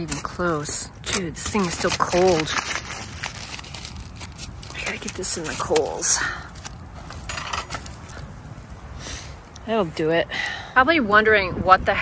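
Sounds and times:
low rumble of wind: 0.0 - 12.0.

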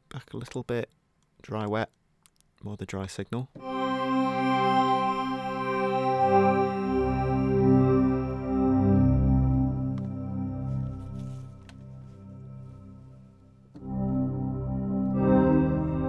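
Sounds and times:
synth pad chord: 3.6 - 16.0.

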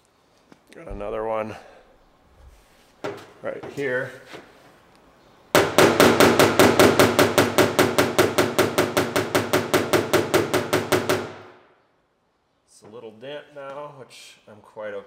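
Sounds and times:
hammer tapping on sheet metal: 5.6 - 11.4.

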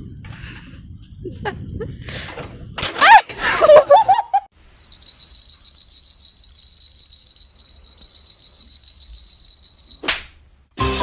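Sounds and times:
cat toy jingling: 4.6 - 10.1
music: 10.8 - 11.0.

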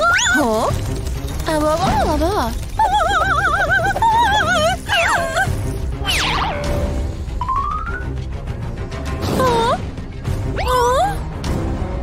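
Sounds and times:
cartoon music with low beat: 5.8 - 12.0.

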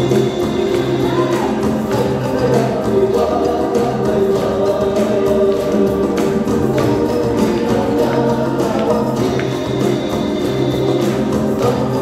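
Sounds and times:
stepping bass line: 0.0 - 12.0
voices singing together: 0.0 - 12.0.

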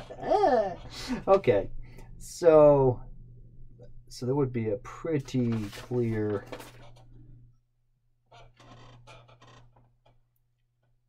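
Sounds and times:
low steady hum: 0.0 - 7.6.

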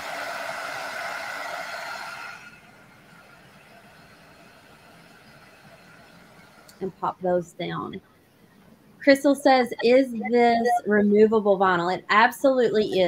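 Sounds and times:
heat gun blowing air: 0.0 - 2.7
heat gun winding down: 0.0 - 2.7.

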